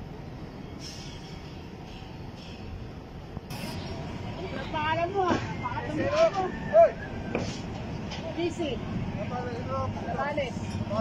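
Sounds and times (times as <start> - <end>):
low rumble of traffic: 0.0 - 11.0
short hiss: 0.8 - 2.7, 3.4 - 3.9.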